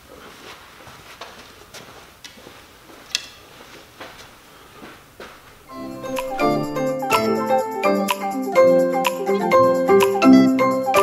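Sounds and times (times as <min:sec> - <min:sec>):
xylophone-like music: 0:05.7 - 0:11.0.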